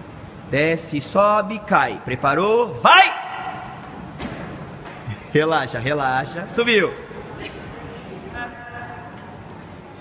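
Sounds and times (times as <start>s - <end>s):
shouted command in gym hall: 0.6s - 4.0s.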